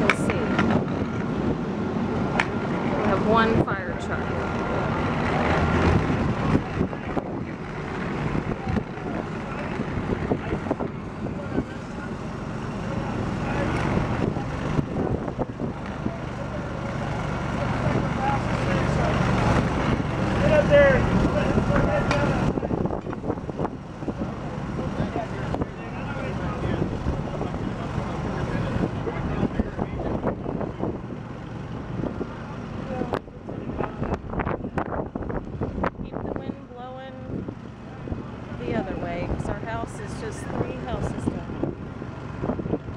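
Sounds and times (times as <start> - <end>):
people talking indistinctly: 0.0 - 1.4, 2.4 - 31.2, 35.9 - 41.7
fire truck engine running: 0.0 - 42.9.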